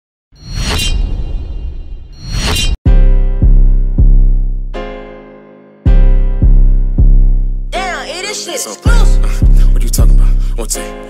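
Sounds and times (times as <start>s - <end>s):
low rumbling bass: 2.9s - 4.8s, 5.9s - 7.8s, 8.9s - 10.7s.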